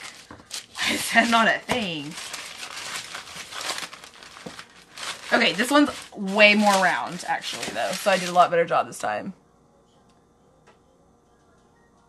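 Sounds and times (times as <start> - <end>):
parchment paper crinkling: 0.0 - 8.7.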